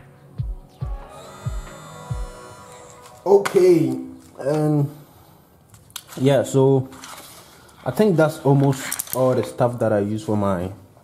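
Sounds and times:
music with bass drum beat: 0.0 - 2.4
small motor whining: 0.9 - 3.3.

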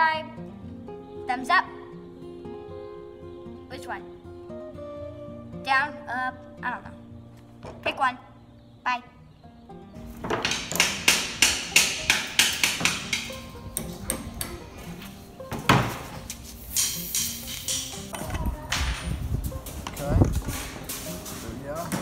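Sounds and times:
background music: 0.0 - 22.0
hammer driving nails into plywood: 10.2 - 14.6.

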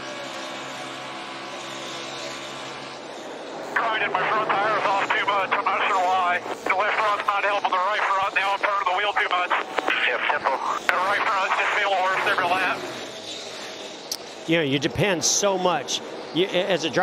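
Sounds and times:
race car engines running: 0.0 - 17.0
man talking over radio: 3.7 - 12.9.

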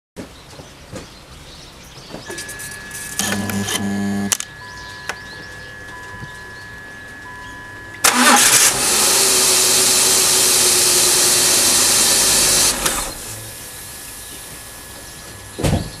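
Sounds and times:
car engine starting and running: 3.2 - 4.4, 7.9 - 15.3.

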